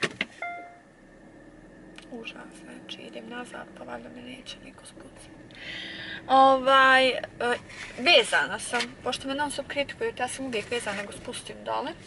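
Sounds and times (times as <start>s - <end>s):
low car cabin hum: 0.0s - 12.0s
short electronic car chime: 0.4s - 0.9s.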